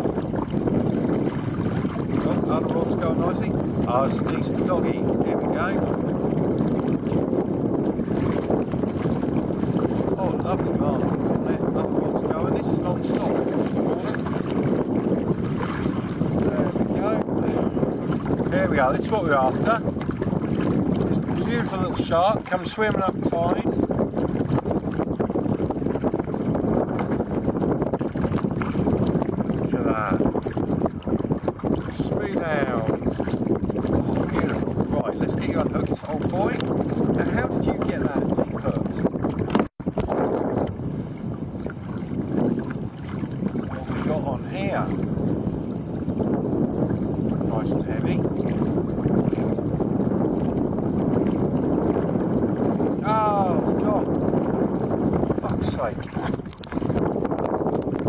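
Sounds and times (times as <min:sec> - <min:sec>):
water lapping against kayak: 0:00.0 - 0:58.0
wind buffeting microphone: 0:00.0 - 0:58.0.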